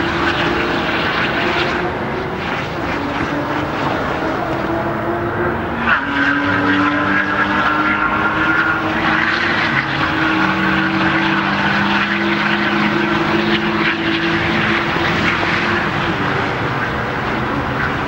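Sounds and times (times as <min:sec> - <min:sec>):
lower engine note: 0:00.0 - 0:18.0
sports car engines passing: 0:00.0 - 0:18.0.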